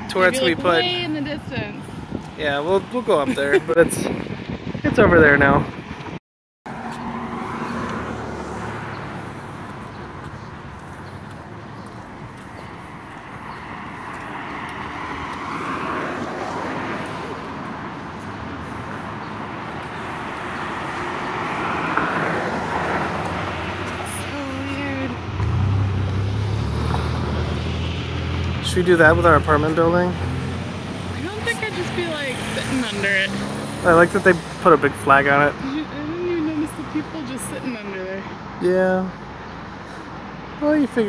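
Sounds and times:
cars passing on street: 0.0s - 41.0s.

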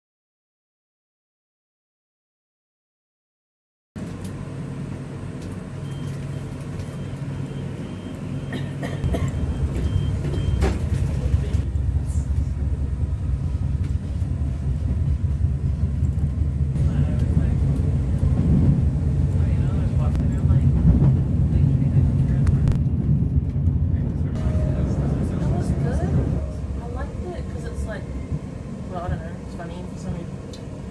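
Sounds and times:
low hum: 4.0s - 30.9s
train wheels rumbling on track: 4.0s - 30.9s.

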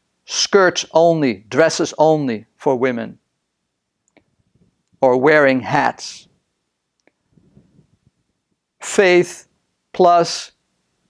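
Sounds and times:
man speaking: 0.3s - 3.2s, 5.0s - 6.3s, 8.8s - 10.6s.

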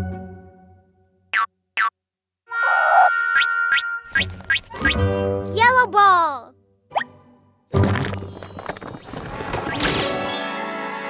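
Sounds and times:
music: 0.0s - 1.3s, 2.5s - 11.0s
cartoon tone sliding down: 2.5s - 3.5s.

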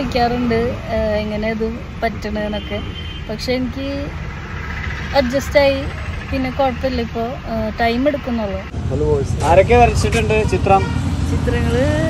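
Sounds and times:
woman's voice: 0.0s - 4.2s, 5.1s - 8.7s.

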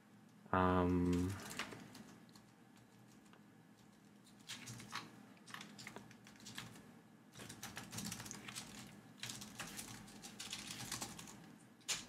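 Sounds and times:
keyboard typing: 1.0s - 6.8s, 7.4s - 12.0s.

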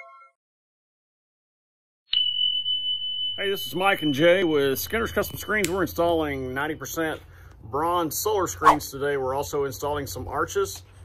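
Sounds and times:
high-pitched whine: 3.4s - 7.3s
low hum: 3.6s - 8.8s.

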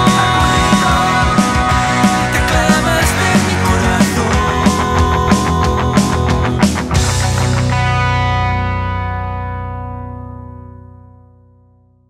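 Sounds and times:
rock band playing: 0.0s - 10.4s.

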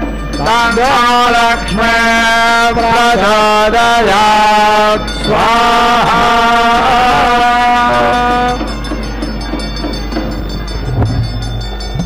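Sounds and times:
priest chanting: 0.0s - 11.9s.

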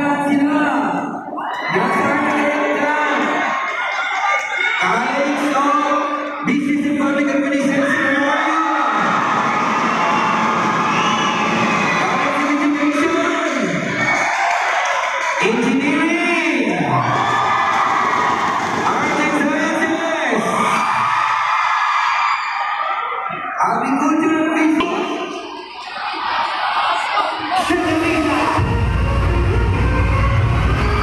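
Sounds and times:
crowd shouting and cheering: 0.0s - 31.0s.

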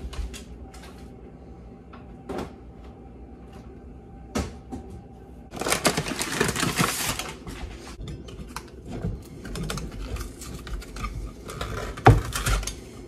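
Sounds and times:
flour bag crinkling: 5.5s - 8.0s
kitchen items clicking and rustling: 5.5s - 13.0s.

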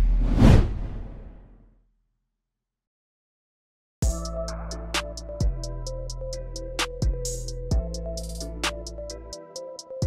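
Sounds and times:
whoosh sound effect: 0.0s - 1.5s.

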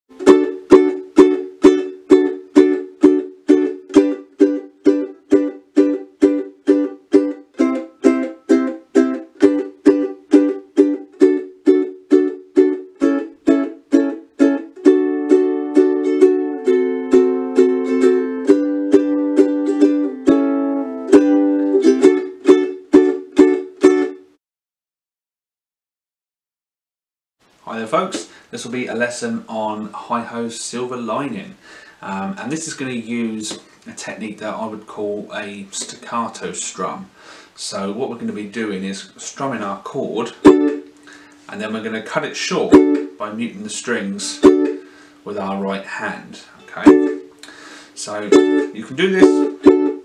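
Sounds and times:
ukulele strumming: 0.1s - 24.4s, 31.0s - 36.7s, 38.2s - 50.0s.

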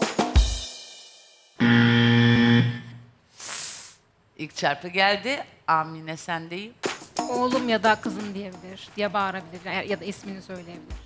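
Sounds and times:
game show buzzer: 1.6s - 3.1s
short quiet hiss: 3.3s - 4.0s.

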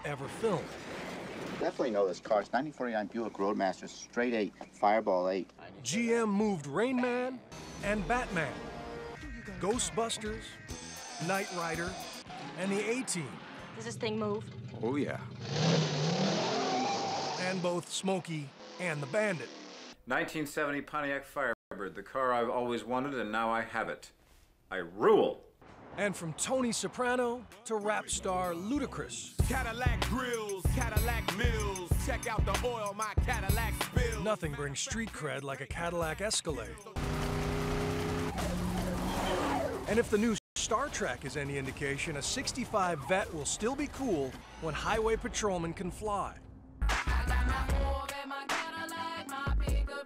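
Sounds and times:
car engine revving hard: 15.3s - 17.6s, 37.0s - 39.4s
car engine running hard: 37.0s - 38.9s.

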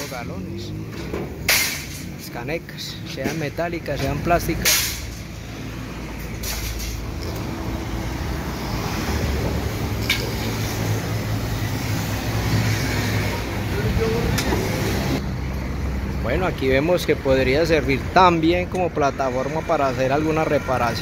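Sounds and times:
heavy vehicle engines rumbling: 0.0s - 21.0s.

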